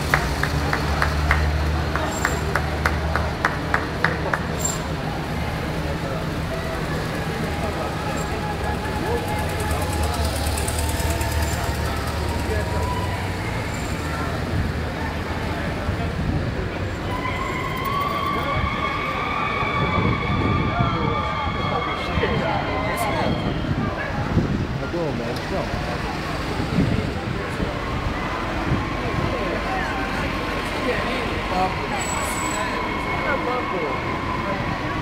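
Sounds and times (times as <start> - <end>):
vehicle engines rumbling past: 0.0 - 35.0
steady siren tone: 17.2 - 23.8.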